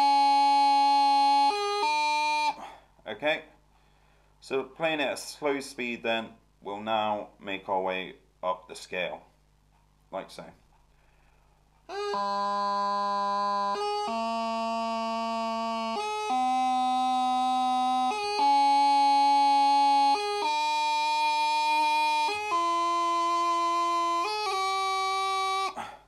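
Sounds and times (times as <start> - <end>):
practice chanter playing a scale: 0.0 - 2.6, 11.8 - 25.8.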